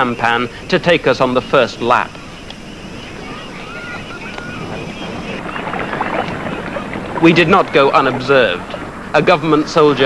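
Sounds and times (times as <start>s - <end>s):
water washing: 1.9s - 10.0s
paddle splashing in water: 2.9s - 10.0s.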